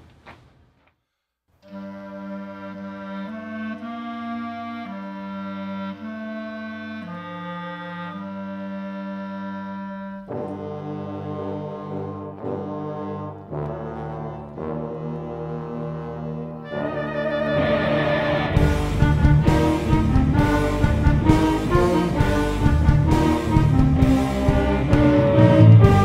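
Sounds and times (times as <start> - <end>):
brass band music: 1.6 - 26.0.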